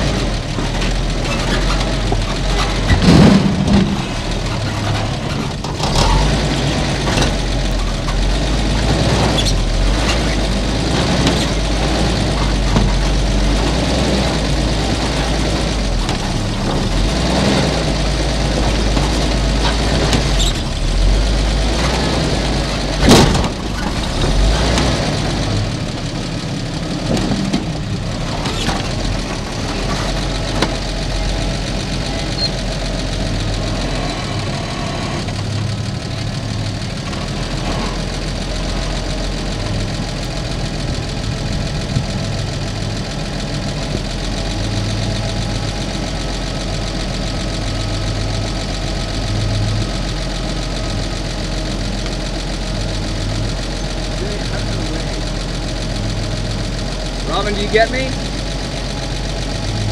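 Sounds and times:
truck clunking over rock: 0:00.0 - 0:59.9
truck engine running and idling: 0:00.0 - 0:59.9.

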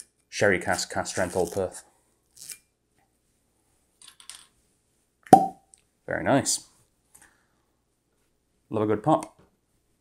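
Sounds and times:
cork popping from bottle: 0:05.3 - 0:05.6.

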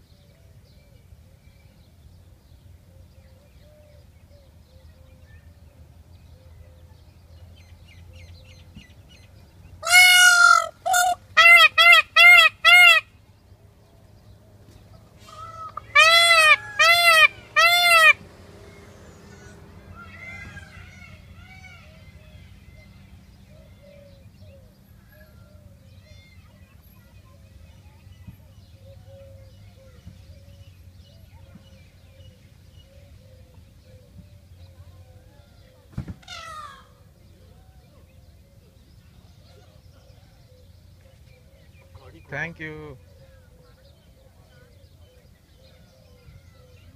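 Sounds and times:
peafowl calling: 0:09.8 - 0:13.1, 0:15.2 - 0:22.2.

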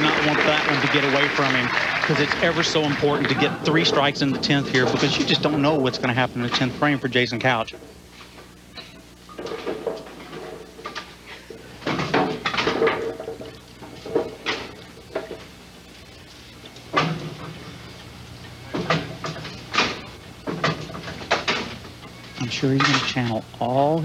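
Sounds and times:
bowling knocks and clatters: 0:00.0 - 0:06.8, 0:08.8 - 0:15.6, 0:16.9 - 0:17.8, 0:18.7 - 0:21.9
steady low hum: 0:00.0 - 0:24.0.

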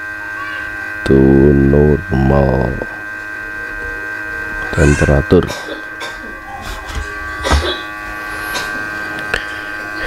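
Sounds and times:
electrical hum with whine: 0:00.0 - 0:10.0.

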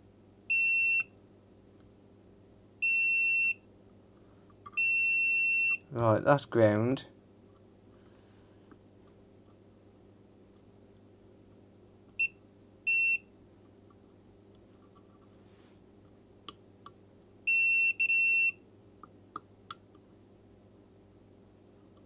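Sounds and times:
multimeter continuity beeps: 0:00.5 - 0:01.2, 0:02.8 - 0:03.7, 0:04.8 - 0:05.9, 0:12.2 - 0:13.3, 0:17.5 - 0:18.6.

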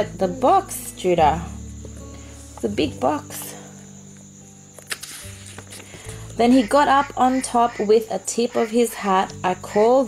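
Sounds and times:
soft background music: 0:00.0 - 0:10.0
book pages turning: 0:04.8 - 0:06.0.

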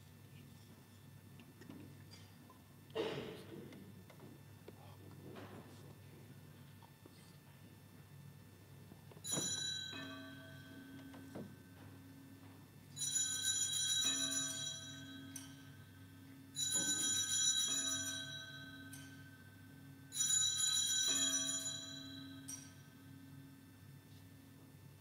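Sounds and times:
altar bells ringing: 0:09.2 - 0:11.2, 0:13.0 - 0:23.2.

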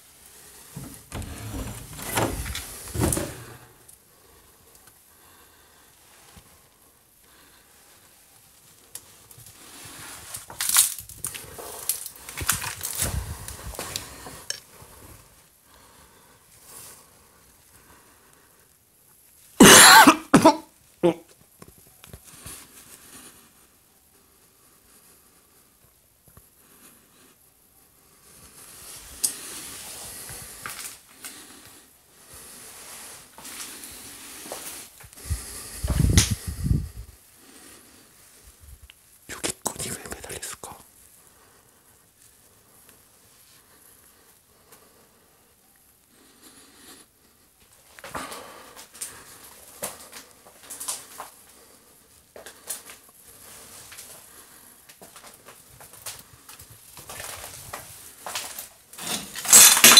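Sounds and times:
rustling: 0:00.0 - 0:04.0
knocks of someone moving about: 0:00.8 - 0:03.8
person whispering: 0:39.2 - 0:41.0.

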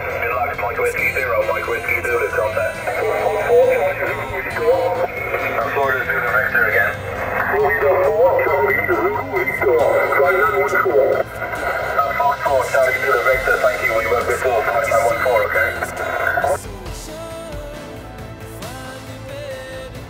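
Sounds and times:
narrow-band radio speech: 0:00.0 - 0:16.6.

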